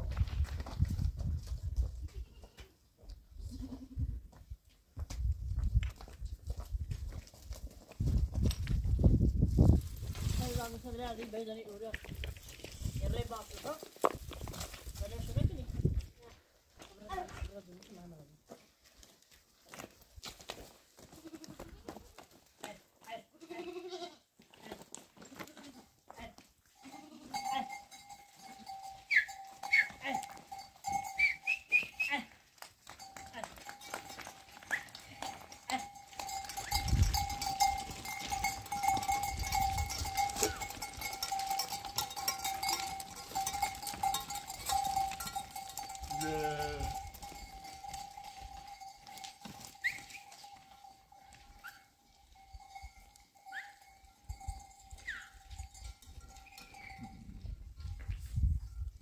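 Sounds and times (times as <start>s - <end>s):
hooves clattering on rock: 0.0s - 3.2s, 4.3s - 23.1s, 27.7s - 53.3s
goat bleating: 2.1s - 2.8s, 3.4s - 4.1s, 21.1s - 22.0s, 23.1s - 25.9s, 26.8s - 27.8s, 46.1s - 47.1s
bell-like ringing: 26.8s - 31.5s, 32.9s - 57.3s.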